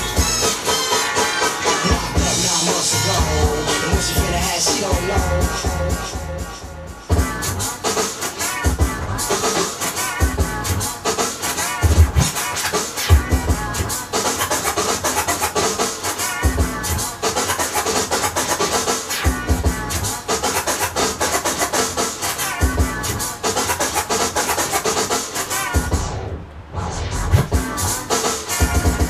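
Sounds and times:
record scratching: 0.0 - 6.1, 7.1 - 29.0
beat with heavy bass hits: 0.0 - 26.2, 27.0 - 29.0.

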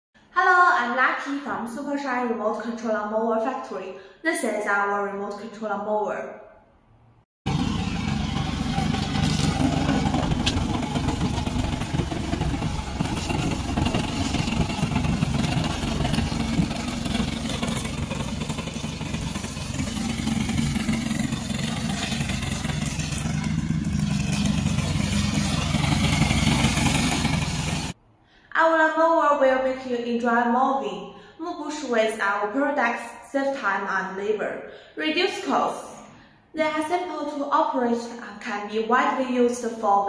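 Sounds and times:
cutting dry weeds: 7.5 - 27.9
mower engine running: 7.5 - 28.0.

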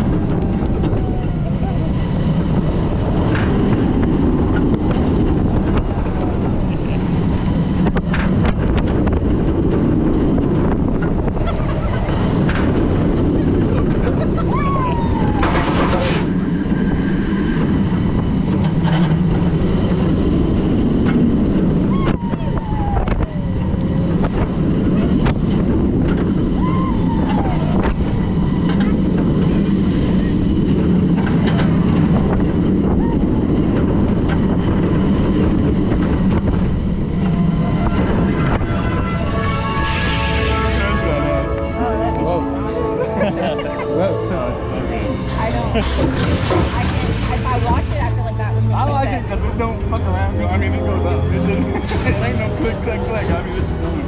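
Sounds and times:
roller coaster wheels roaring on track: 0.0 - 54.0
wind blasting microphone: 0.0 - 54.0.

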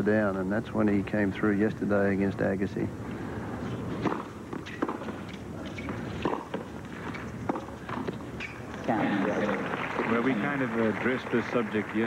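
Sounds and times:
tennis ball bouncing: 3.9 - 8.8
racket striking tennis ball: 4.0 - 8.2.

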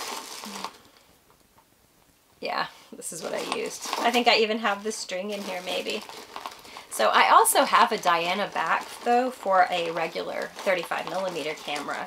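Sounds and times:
rustle of objects being handled: 0.0 - 1.7, 2.5 - 12.0.

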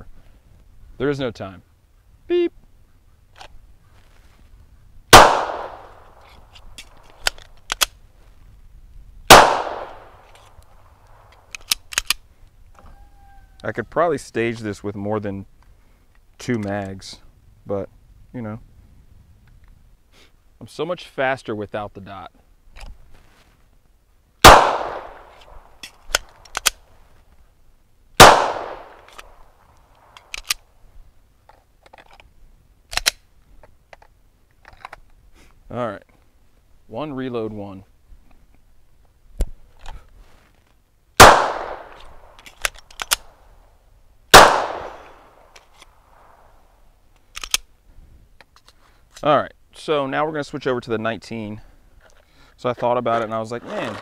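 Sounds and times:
pistol shots with echo: 5.1 - 6.1, 9.3 - 10.2, 24.4 - 25.6, 28.2 - 29.1, 41.2 - 42.4, 44.3 - 45.5
magazine reload clicks: 5.1 - 8.0, 9.3 - 12.2, 24.4 - 26.8, 28.2 - 30.6, 32.9 - 33.2, 41.2 - 43.4, 44.3 - 46.4, 47.2 - 47.7.

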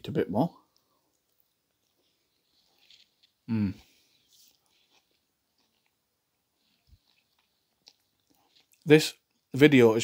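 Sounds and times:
faint chewing: 0.6 - 9.5.

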